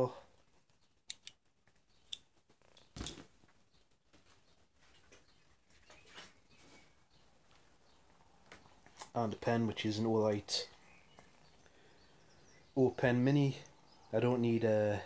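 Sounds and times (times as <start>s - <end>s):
soft clicks: 1.1s - 3.2s.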